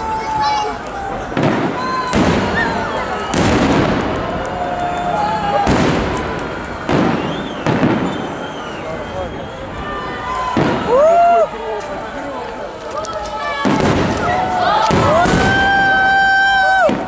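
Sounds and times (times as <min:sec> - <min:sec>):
fireworks booming overhead: 0:00.0 - 0:17.0.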